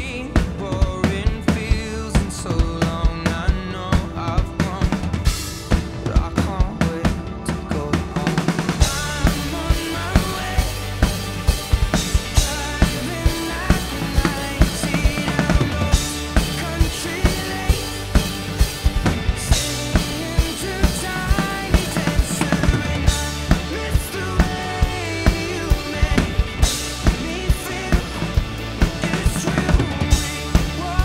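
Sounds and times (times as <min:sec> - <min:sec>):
drum kit playing pop-rock beat: 0:00.0 - 0:31.0
recorded song: 0:00.0 - 0:31.0.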